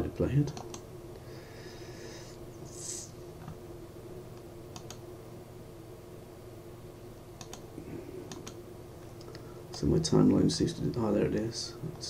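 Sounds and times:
steady low hum: 0.0 - 12.0
computer mouse clicks: 0.5 - 0.8, 4.4 - 5.0, 7.4 - 7.7, 8.3 - 8.6
man speaking: 9.8 - 12.0.

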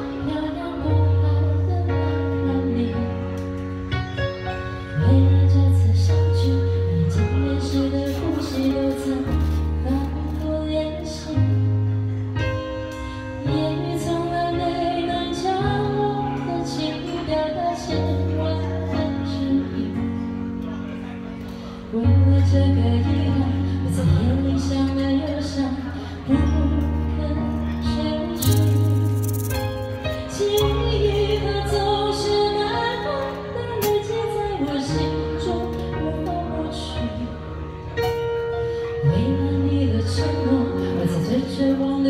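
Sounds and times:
woman singing: 0.0 - 3.6, 4.8 - 11.9, 13.4 - 20.3, 21.9 - 29.5, 30.2 - 37.5, 39.0 - 42.0
live band playing: 28.0 - 34.8.

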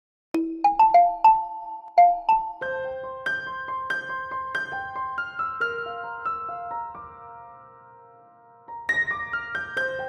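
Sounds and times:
mallet percussion jingle: 0.4 - 2.7.

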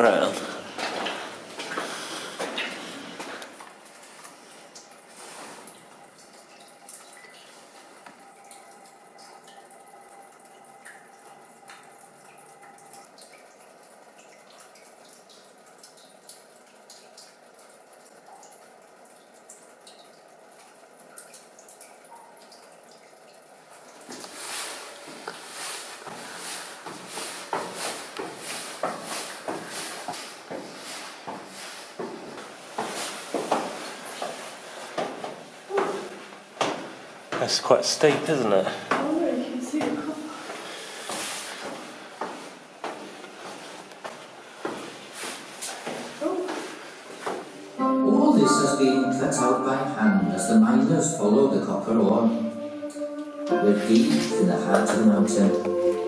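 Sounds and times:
faint steady hum: 0.0 - 56.0
water dripping on rock: 5.7 - 24.4.

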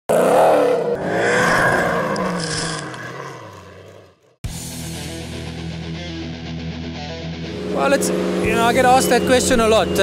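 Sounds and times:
rally car engine revving by: 7.5 - 10.0.

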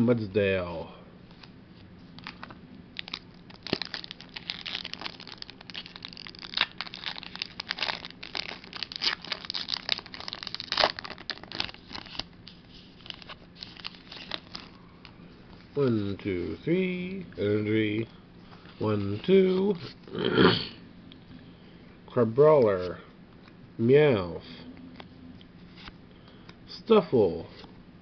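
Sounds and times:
foil wrapper crinkling: 2.2 - 15.1.

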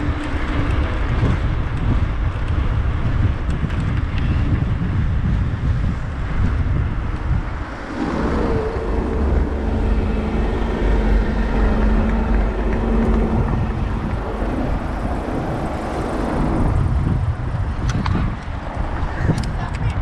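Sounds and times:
low traffic rumble: 0.0 - 20.0
vehicle engine running: 6.6 - 18.4.

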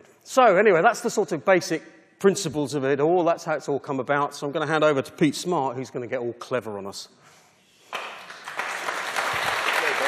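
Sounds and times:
audience applause: 8.0 - 10.0.

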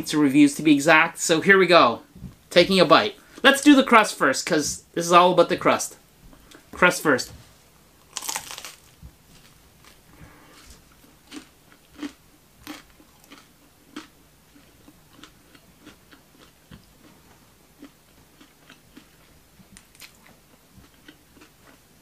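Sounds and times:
crunchy bite into pizza crust: 8.0 - 14.1
chewing crunches: 8.0 - 17.2, 17.8 - 21.9.

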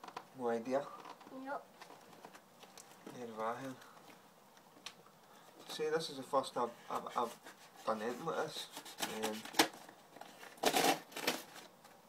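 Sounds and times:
hands opening cardboard parcel: 8.6 - 11.9.

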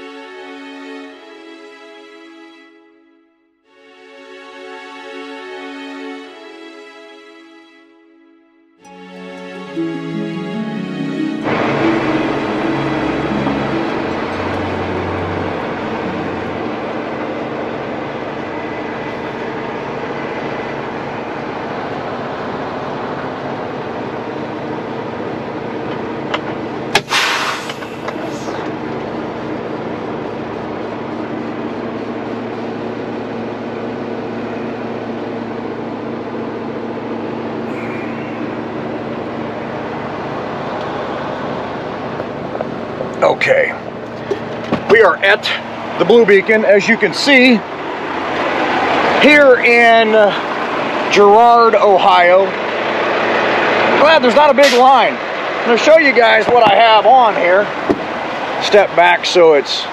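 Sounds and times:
music: 0.0 - 18.7
diesel truck engine idling: 8.9 - 59.9
loud hiss of air: 27.0 - 28.6.

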